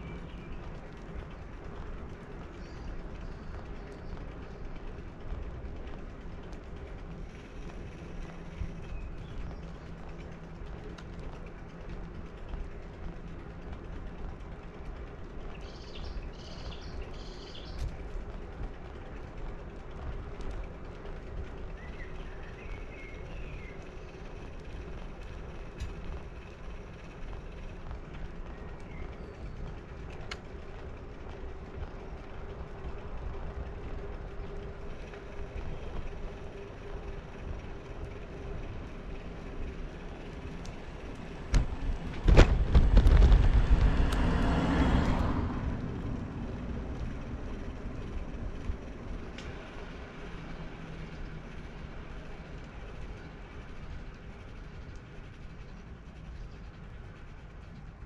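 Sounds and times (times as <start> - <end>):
wind and road rumble: 0.0 - 58.0
car passing by: 41.5 - 48.8.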